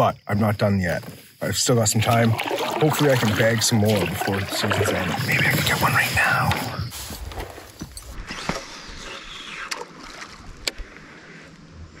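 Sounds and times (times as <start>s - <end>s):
wind: 0.0s - 12.0s
water wash: 1.9s - 6.2s.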